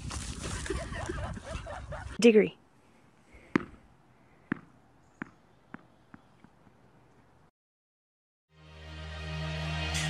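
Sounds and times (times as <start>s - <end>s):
object bouncing on concrete: 4.5s - 6.7s.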